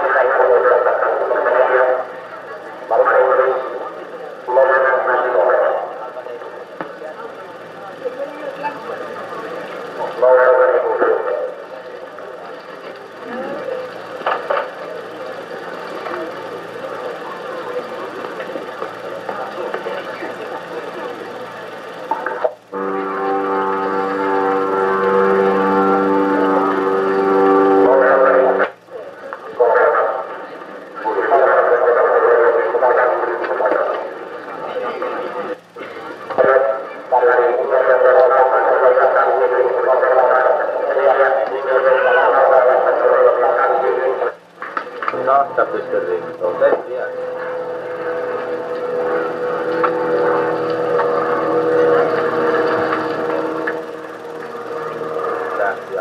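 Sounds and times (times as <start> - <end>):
muffled indistinct voices: 0.0 - 56.0
steady held multi-pitch tone: 0.0 - 56.0.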